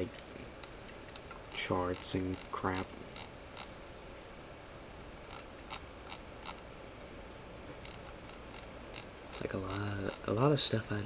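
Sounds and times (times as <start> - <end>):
steady low hiss: 0.0 - 11.0
computer mouse clicks: 7.8 - 10.2.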